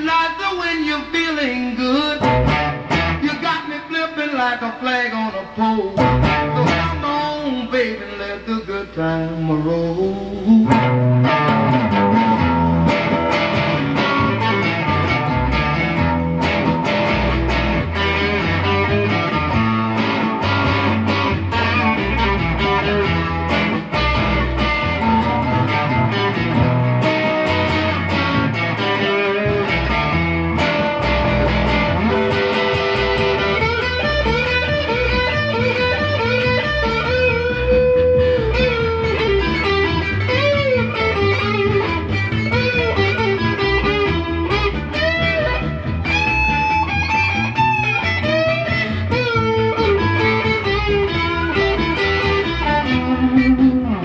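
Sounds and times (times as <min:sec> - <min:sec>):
bass guitar: 0:00.0 - 0:04.1, 0:04.8 - 0:54.0
electric guitar solo: 0:00.0 - 0:08.5, 0:09.7 - 0:54.0
drums: 0:01.8 - 0:03.9, 0:05.5 - 0:09.0, 0:10.1 - 0:54.0.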